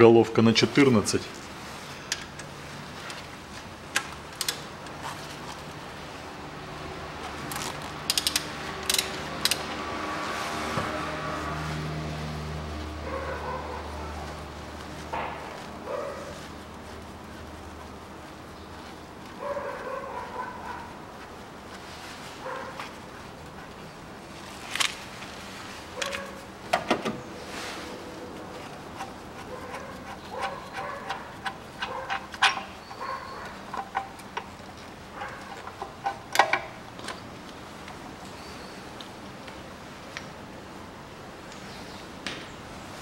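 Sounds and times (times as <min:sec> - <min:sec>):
short squeaks: 0:29.0 - 0:34.2.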